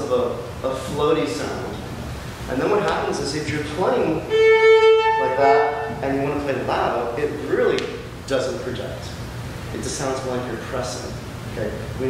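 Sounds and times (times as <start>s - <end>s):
man talking: 0.0s - 1.8s, 2.5s - 4.3s, 5.2s - 12.0s
viola melody: 4.1s - 6.1s.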